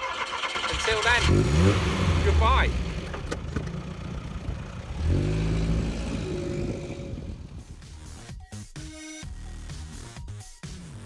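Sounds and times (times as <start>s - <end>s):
car engine revving: 0.2s - 8.1s
music: 7.5s - 11.0s.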